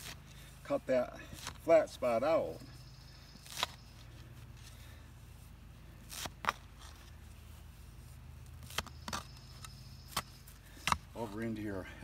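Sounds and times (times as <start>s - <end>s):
low steady hum: 0.0s - 12.0s
edger blade crunching into turf: 1.3s - 1.8s, 3.4s - 5.0s, 5.8s - 11.6s.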